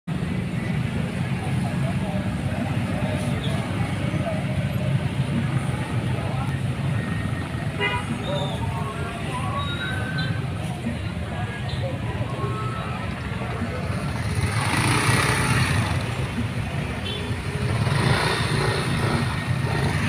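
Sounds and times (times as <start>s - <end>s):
people's voices: 0.1s - 20.0s
traffic engine rumble: 0.1s - 20.0s.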